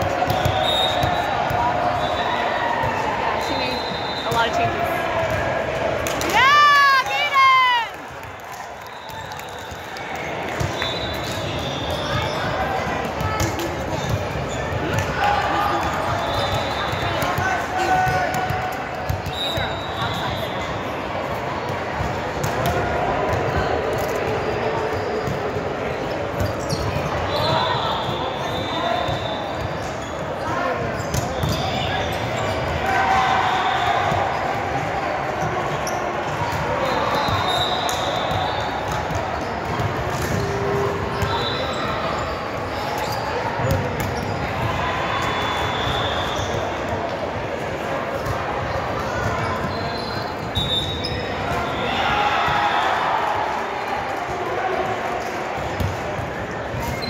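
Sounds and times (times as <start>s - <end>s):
voices of players and spectators: 0.0s - 57.0s
volleyballs struck and bouncing: 36.3s - 41.4s.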